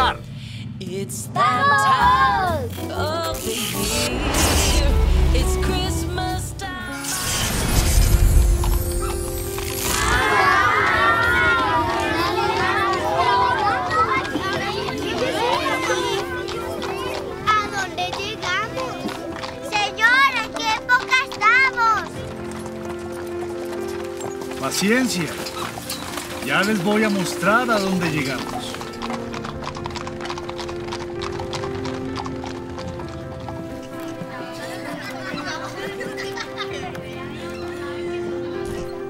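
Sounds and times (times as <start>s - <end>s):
children shouting and screaming: 1.4s - 2.7s, 9.8s - 22.2s
horse hooves clip-clopping: 8.2s - 9.9s, 11.2s - 38.9s.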